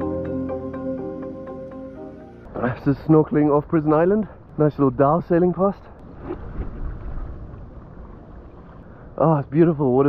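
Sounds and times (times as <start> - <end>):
wind buffeting microphone: 6.0 - 9.2.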